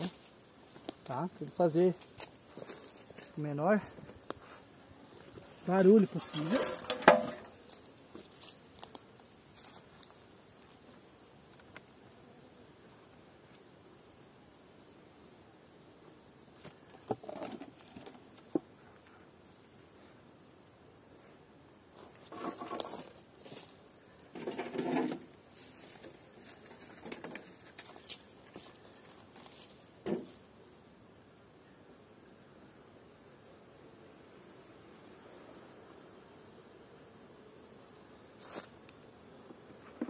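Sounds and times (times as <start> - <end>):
wood bumping and scraping: 6.4 - 7.6, 16.9 - 18.7, 22.1 - 23.2, 24.3 - 25.3, 26.8 - 27.6.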